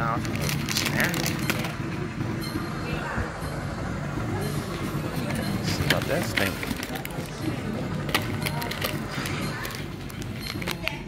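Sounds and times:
plastic packaging crinkling: 0.2s - 1.7s, 6.0s - 7.4s.

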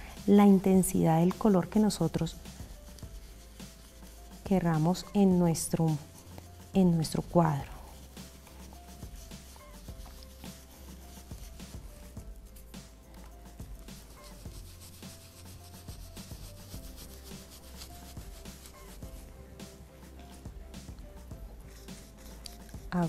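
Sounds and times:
paint brush scratchy rubbing: 0.0s - 23.0s.

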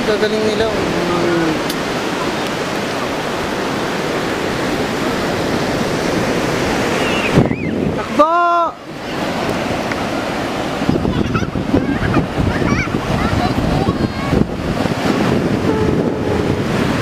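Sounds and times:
wind buffeting microphone: 0.0s - 8.2s, 8.9s - 17.0s
ocean surf breaking: 0.0s - 17.0s.

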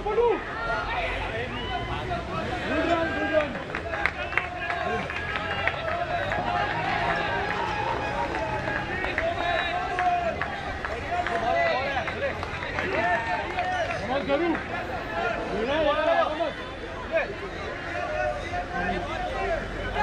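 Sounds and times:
murmur of voices: 0.0s - 20.0s
people calling out and talking: 0.0s - 20.0s.

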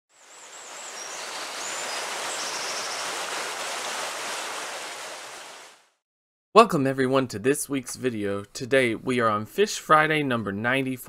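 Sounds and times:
rushing water: 0.1s - 5.9s.

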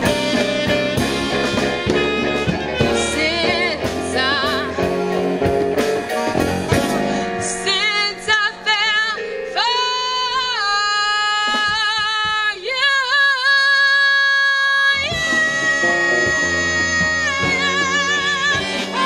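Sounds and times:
woman singing jazz: 0.0s - 5.5s, 7.1s - 19.0s
conga hits: 0.0s - 7.4s
live band playing: 0.0s - 19.0s.

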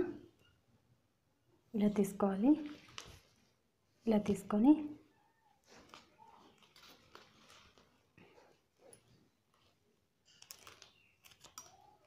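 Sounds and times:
plastic wire clicking and rustling: 5.7s - 8.3s, 8.9s - 12.0s.

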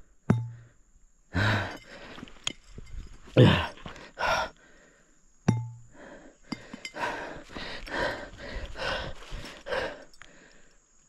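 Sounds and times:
man breathing heavily: 0.0s - 2.5s, 3.3s - 11.0s.

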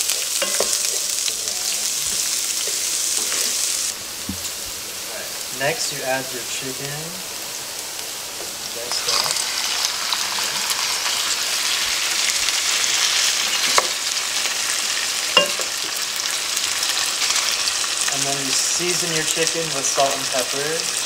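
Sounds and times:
chicken sizzling in hot oil: 0.0s - 21.0s
wooden spatula knocking pan: 15.4s - 15.7s.

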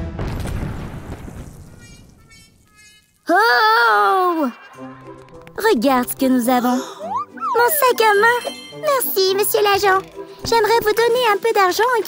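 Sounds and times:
explosion rumble: 0.0s - 2.2s.

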